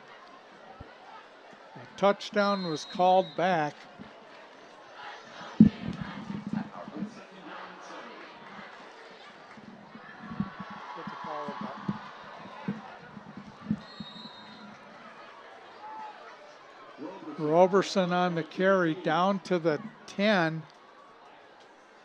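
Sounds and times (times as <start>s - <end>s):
stadium crowd murmuring: 0.0s - 22.0s
low thumps: 5.6s - 7.1s, 11.6s - 15.0s.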